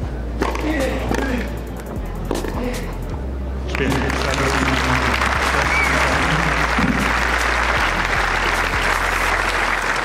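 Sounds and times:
background music: 0.0s - 10.0s
racquets hitting tennis ball: 0.4s - 1.4s.

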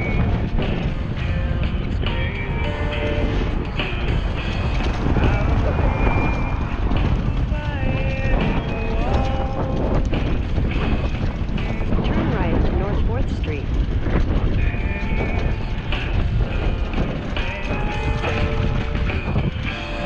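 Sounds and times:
bicycle road rumble: 0.0s - 20.0s
music of short held notes: 0.0s - 20.0s
wind on microphone: 0.0s - 20.0s.

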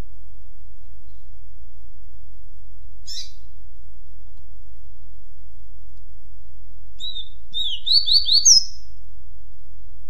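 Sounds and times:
steady low hum: 0.0s - 10.0s
bird singing high phrase: 3.0s - 3.5s, 7.0s - 8.9s.

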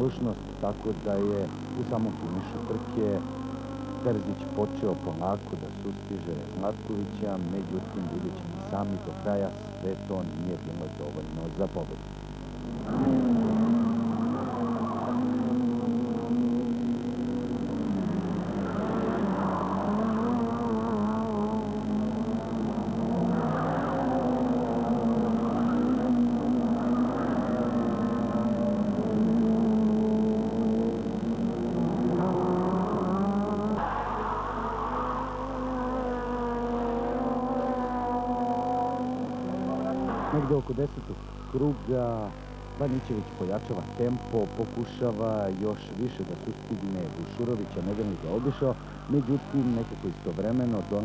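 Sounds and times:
racing car engines at high revs: 12.6s - 40.6s.

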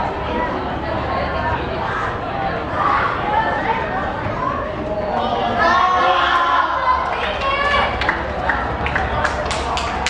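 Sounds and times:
young people shouting: 5.0s - 8.1s.

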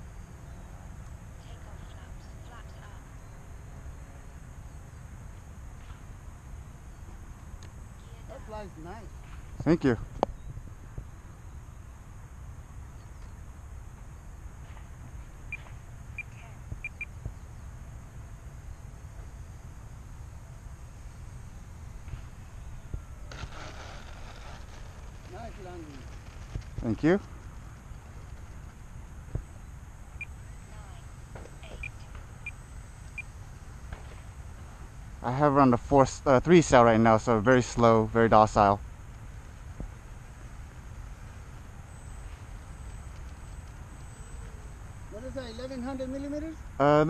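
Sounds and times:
wind rumble on microphone: 9.1s - 12.0s, 21.2s - 29.7s
short high beeps: 16.2s - 17.1s.

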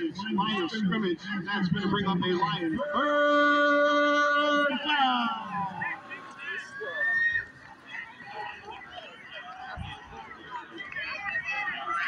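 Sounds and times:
voices calling: 0.0s - 12.0s
long held shout: 2.8s - 7.6s.

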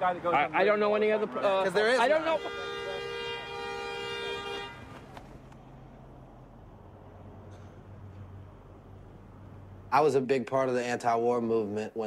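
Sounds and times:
street background: 0.0s - 12.0s
car horn blast: 2.1s - 5.0s.

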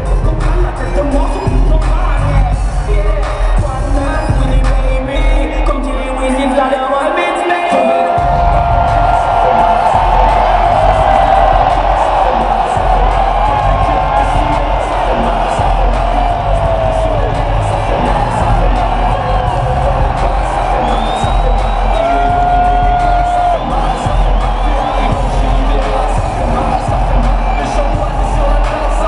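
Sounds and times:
loud music with pulsing bass: 0.0s - 29.0s
crowd cheering and whooping: 6.1s - 29.0s.

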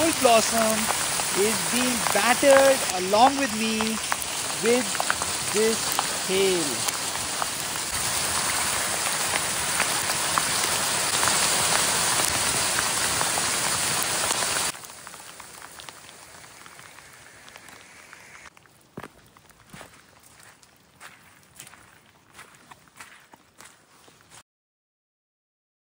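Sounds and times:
hail pelting a tree and grass: 0.0s - 24.2s.

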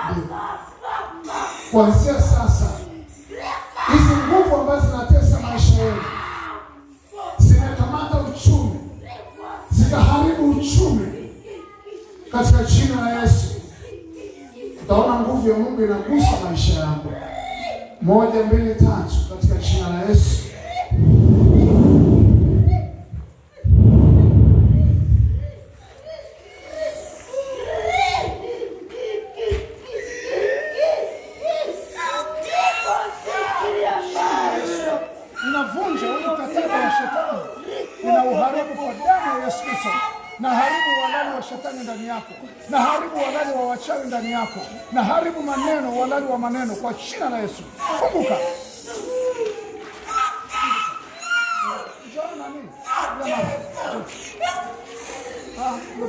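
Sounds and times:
distorted booming from loudspeaker: 21.0s - 23.0s, 23.6s - 25.4s.

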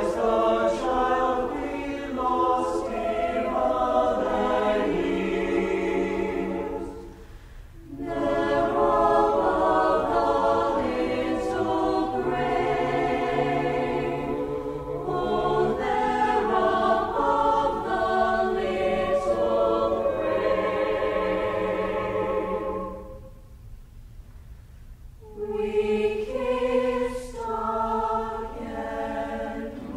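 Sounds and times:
choir singing a cappella: 0.0s - 23.5s, 25.2s - 29.9s.

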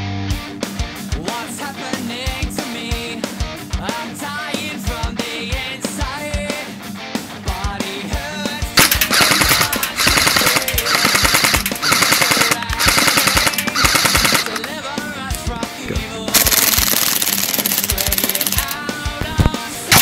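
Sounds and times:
rock music: 0.0s - 20.0s
airsoft gun firing bursts: 8.8s - 14.8s, 16.3s - 19.1s.

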